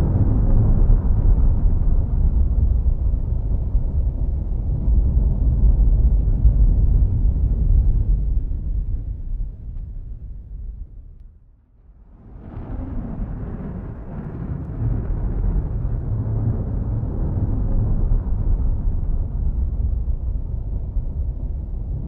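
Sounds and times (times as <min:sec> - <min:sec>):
steady low rumbling: 0:00.0 - 0:22.0.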